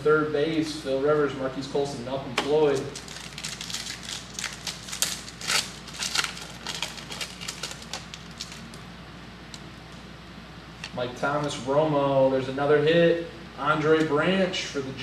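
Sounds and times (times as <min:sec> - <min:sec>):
wrapper crinkling and tearing: 0:02.7 - 0:08.8.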